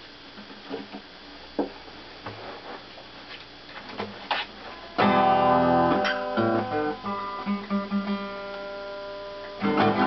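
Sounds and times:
hands tapping acoustic guitar: 4.3 - 10.0.

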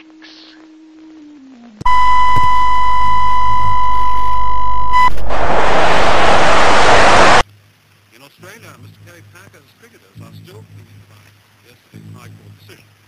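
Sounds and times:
tv static hiss: 0.0 - 13.0
electronic test tone beep: 1.9 - 5.7
low hum: 1.9 - 7.4.

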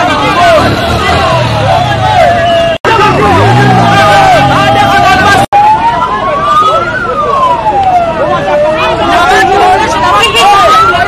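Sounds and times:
crowd shouting: 0.0 - 7.0, 8.2 - 11.0
siren wailing: 0.3 - 11.0.

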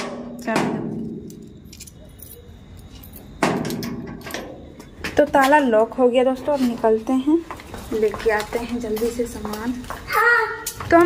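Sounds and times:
padlock clinking on metal hasp: 1.1 - 4.7
keys jingling: 1.2 - 4.7.

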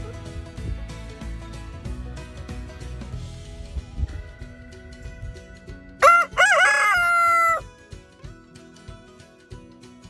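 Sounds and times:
background music: 0.0 - 10.0
rooster crowing: 6.0 - 7.6.

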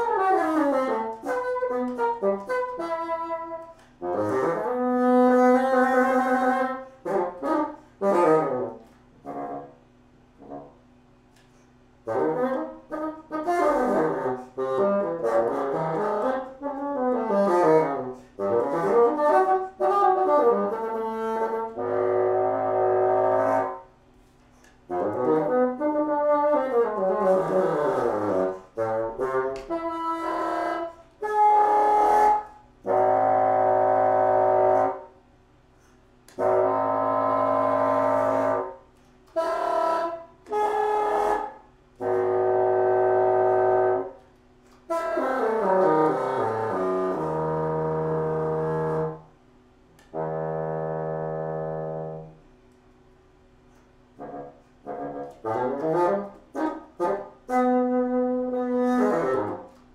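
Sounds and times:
solo bassoon playing: 0.0 - 10.9, 12.0 - 23.9, 24.6 - 35.2, 35.8 - 49.4, 50.0 - 52.5, 53.7 - 59.9.

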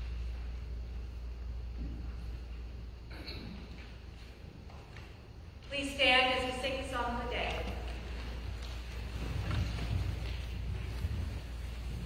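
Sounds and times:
faint bumps: 8.0 - 12.0.

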